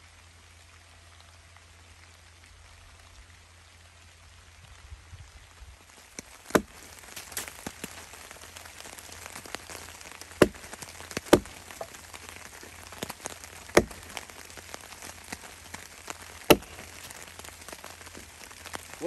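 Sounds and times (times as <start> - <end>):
rain pattering on a tarp: 0.0 - 19.0
axe chopping wood: 6.5 - 8.0, 8.9 - 15.5, 16.4 - 18.8.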